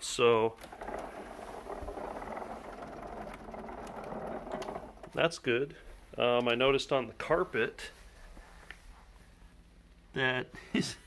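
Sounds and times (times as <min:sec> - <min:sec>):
wheels rolling across carpet: 0:00.5 - 0:06.8.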